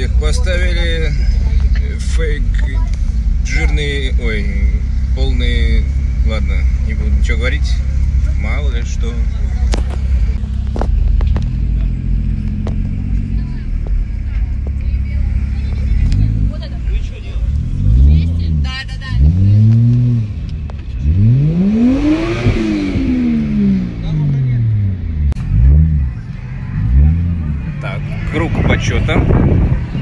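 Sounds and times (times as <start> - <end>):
car engine revving: 0.0 - 30.0.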